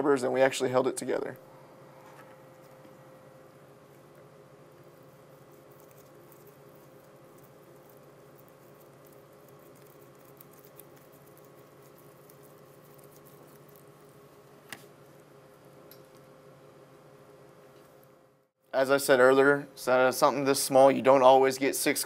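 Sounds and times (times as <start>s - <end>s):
room hum: 0.0s - 22.0s.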